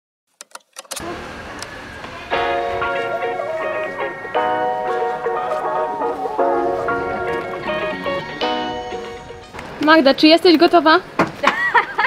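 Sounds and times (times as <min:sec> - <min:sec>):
street noise: 0:00.5 - 0:12.0.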